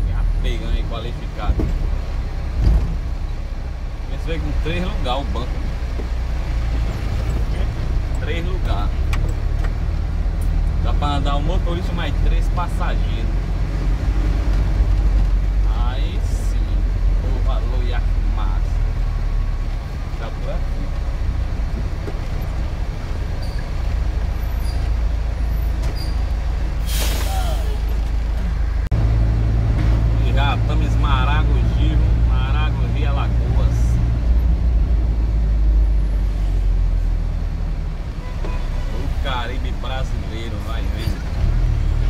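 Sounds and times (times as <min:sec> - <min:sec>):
heavy vehicle engine rumble: 0:00.0 - 0:42.0
air brake hiss: 0:26.8 - 0:27.8.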